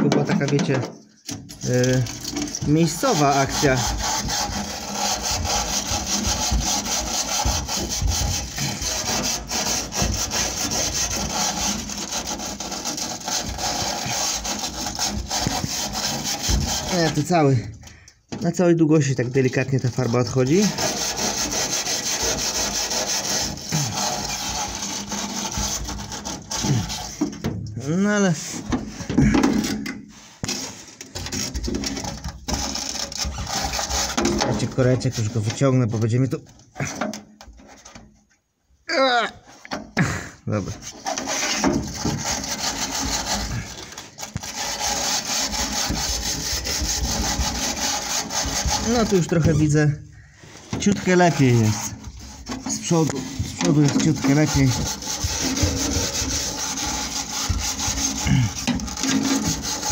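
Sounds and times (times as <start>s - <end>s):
wire brush scraping sheet steel: 0.1s - 17.8s, 19.0s - 38.0s, 40.5s - 59.9s.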